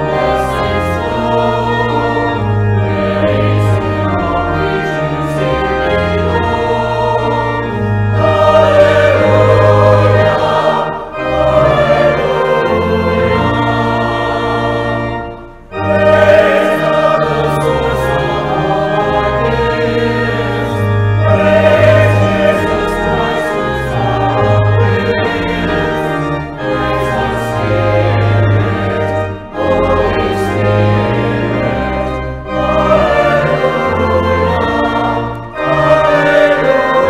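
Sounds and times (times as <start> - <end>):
choir singing church music: 0.0 - 37.0
instrumental accompaniment: 0.0 - 37.0.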